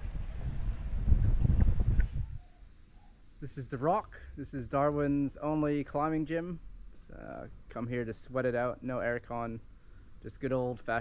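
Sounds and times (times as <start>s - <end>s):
wind buffeting microphone: 0.0s - 2.4s
insects droning in trees: 0.0s - 11.0s.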